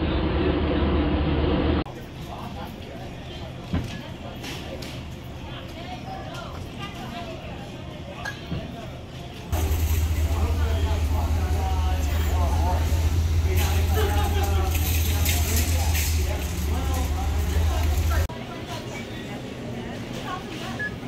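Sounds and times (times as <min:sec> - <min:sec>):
store ambience: 0:00.0 - 0:21.0
people talking: 0:01.8 - 0:21.0
diesel engine idling: 0:09.6 - 0:18.3.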